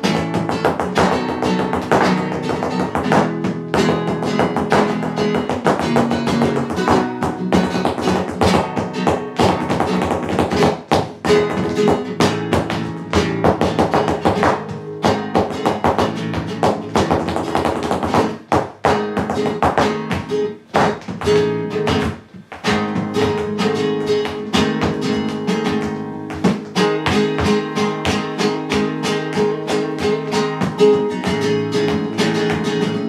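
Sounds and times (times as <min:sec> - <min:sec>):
flamenco guitar: 0:00.0 - 0:33.0
percussive guitar strikes: 0:18.2 - 0:32.8.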